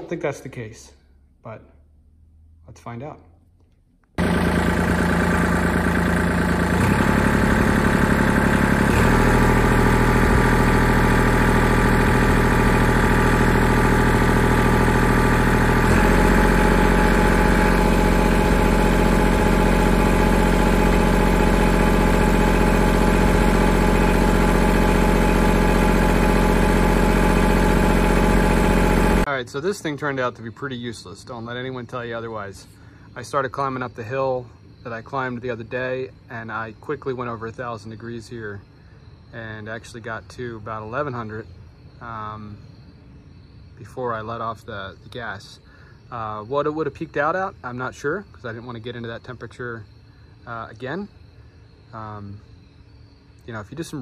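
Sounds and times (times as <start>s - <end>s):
tractor diesel engine running: 4.2s - 29.3s.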